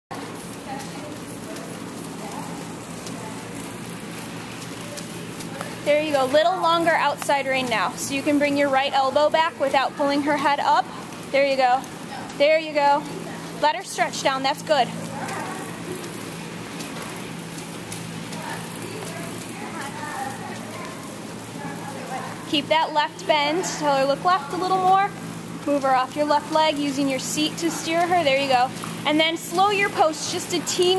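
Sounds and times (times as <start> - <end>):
steady low hum: 0.1 - 30.9.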